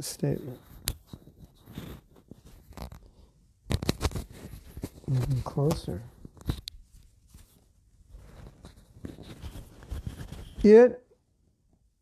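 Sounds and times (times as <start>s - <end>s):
microphone rubbing on shirt: 0.0s - 10.8s.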